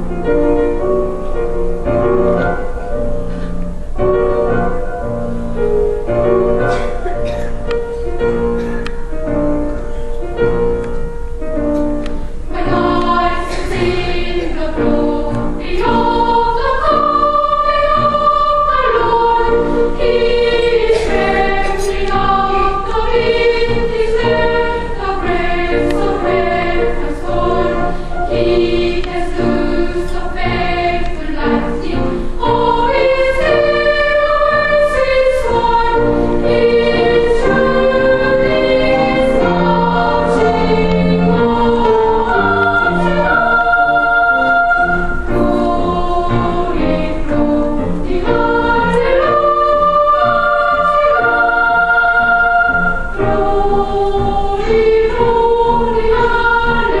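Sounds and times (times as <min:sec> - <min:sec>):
children's choir singing: 0:00.0 - 0:57.0.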